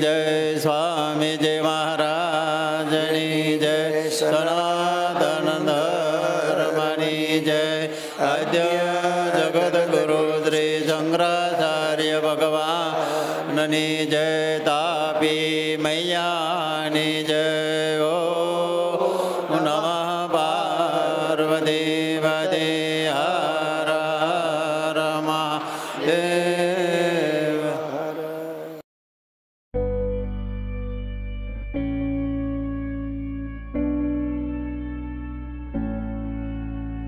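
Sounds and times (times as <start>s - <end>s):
steady low drone: 29.8s - 37.0s.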